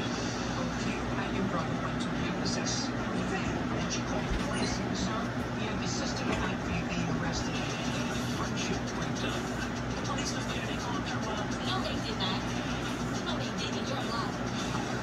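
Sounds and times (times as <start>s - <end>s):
faint television dialogue: 0.0s - 15.0s.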